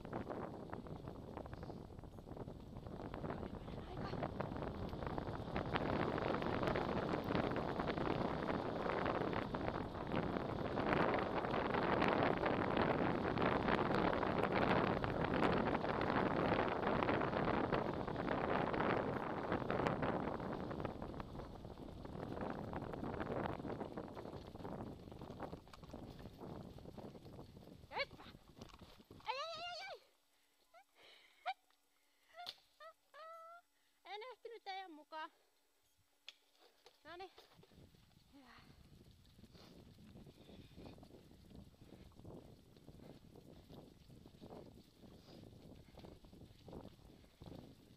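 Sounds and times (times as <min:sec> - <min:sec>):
scooter wheels rolling on dirt: 0:00.0 - 0:30.0, 0:36.3 - 0:47.9
wind on microphone: 0:00.0 - 0:30.1, 0:37.4 - 0:47.9.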